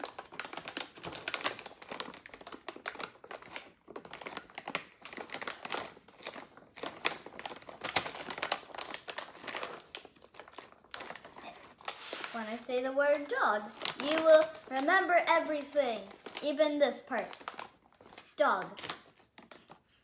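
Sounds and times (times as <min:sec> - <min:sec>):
plastic bag crinkling: 0:00.0 - 0:20.0.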